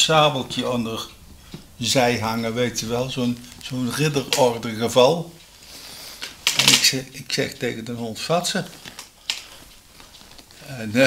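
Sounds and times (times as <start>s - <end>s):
man speaking: 0.0s - 1.2s, 1.8s - 5.4s, 6.6s - 8.8s, 10.6s - 11.0s.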